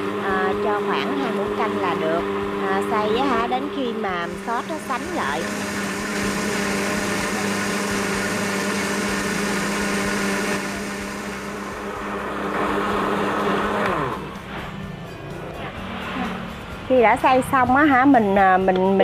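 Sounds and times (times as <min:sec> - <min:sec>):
blender motor winding down: 0:00.0 - 0:14.7
electric blender running: 0:00.0 - 0:14.7.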